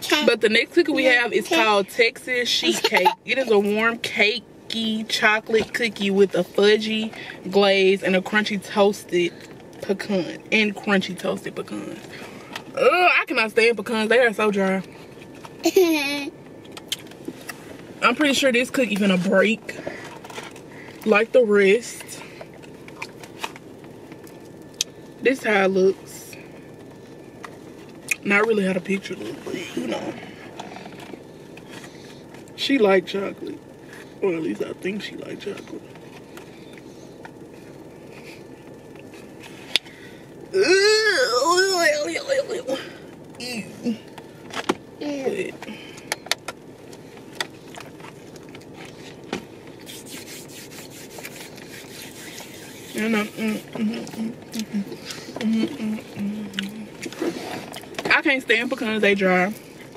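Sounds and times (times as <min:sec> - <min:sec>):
car interior background noise: 0:00.0 - 0:26.2, 0:26.8 - 0:59.9
woman humming mmm: 0:53.8 - 0:56.9
chewing: 0:54.0 - 0:58.0.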